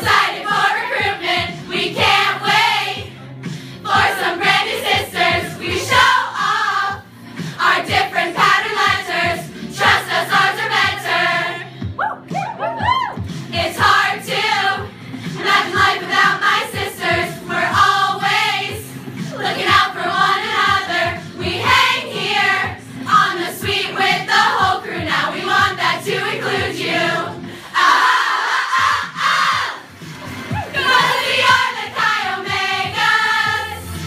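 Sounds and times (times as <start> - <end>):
group of women singing in chorus: 0.0 - 3.1, 3.8 - 11.7, 13.5 - 29.9, 30.7 - 34.0.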